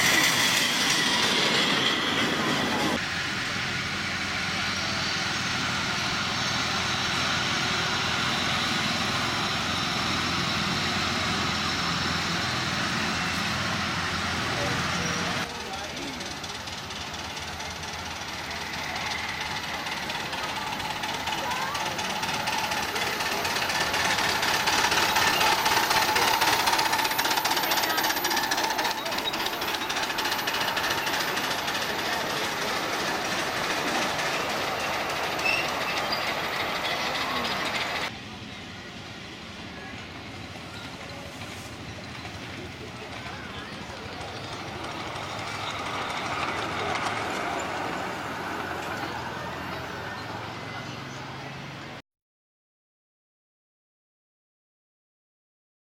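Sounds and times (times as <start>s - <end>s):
miniature train running and clattering: 0.0s - 52.0s.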